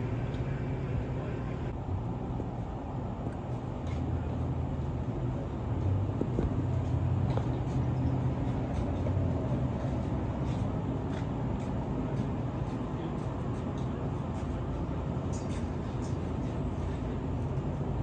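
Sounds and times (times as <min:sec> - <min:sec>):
train idling hum: 0:00.0 - 0:18.0.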